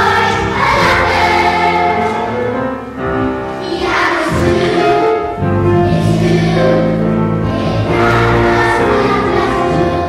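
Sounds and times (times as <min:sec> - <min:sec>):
children's choir singing: 0:00.0 - 0:10.0
low instrumental accompaniment: 0:00.0 - 0:10.0.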